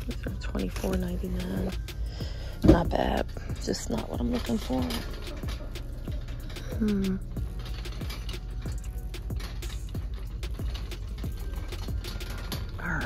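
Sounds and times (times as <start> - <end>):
plastic shopping cart rattling: 0.0 - 1.8, 2.7 - 13.0
background music: 0.0 - 13.0.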